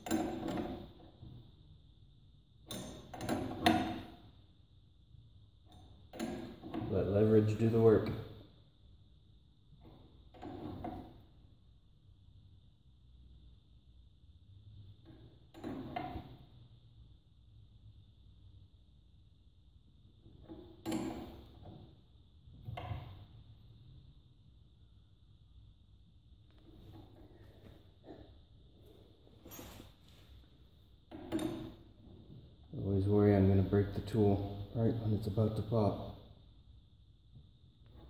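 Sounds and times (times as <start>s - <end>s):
faint steady background noise: 0.0s - 38.0s.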